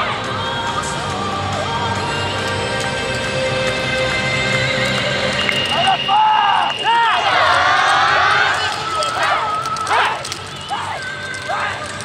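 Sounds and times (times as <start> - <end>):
wooden clappers clacking: 2.4 - 12.0
group shouting calls: 5.7 - 12.0.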